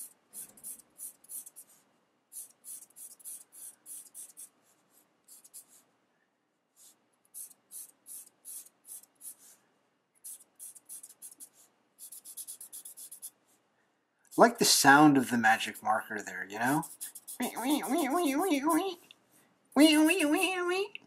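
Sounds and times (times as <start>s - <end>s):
marker squeaking on paper: 0.0s - 5.8s, 6.8s - 9.6s, 10.2s - 13.4s, 16.6s - 19.0s, 19.8s - 20.6s.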